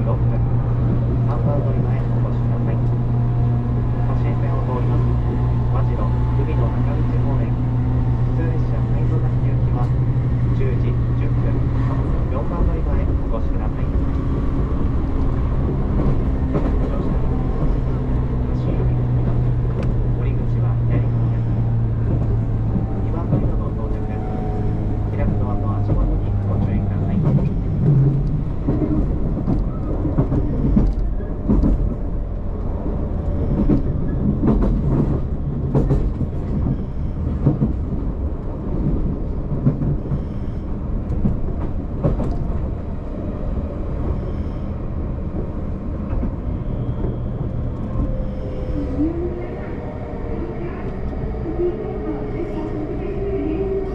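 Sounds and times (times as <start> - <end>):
train interior hum: 0.0 - 53.9.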